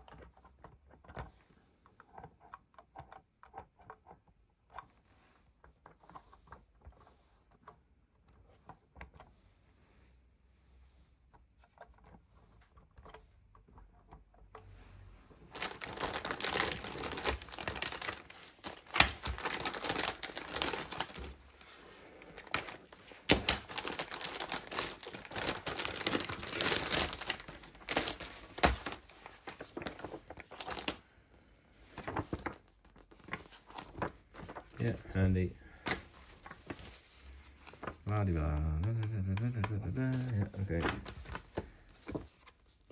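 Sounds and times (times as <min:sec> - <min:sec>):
plastic bag crinkling: 0:15.5 - 0:31.0.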